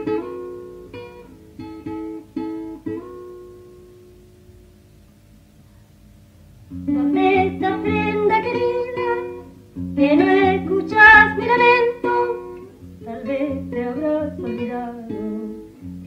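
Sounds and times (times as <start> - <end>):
acoustic guitar: 0.0 - 16.0
women singing: 6.9 - 15.6.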